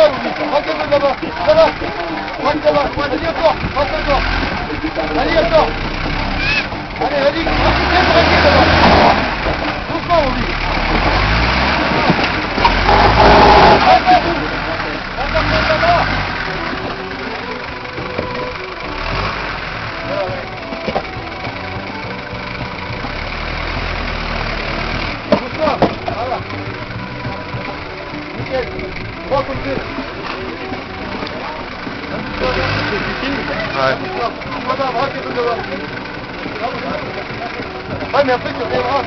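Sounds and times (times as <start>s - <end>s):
off-road engine revving: 0.0s - 39.0s
spectators shouting: 6.3s - 6.9s.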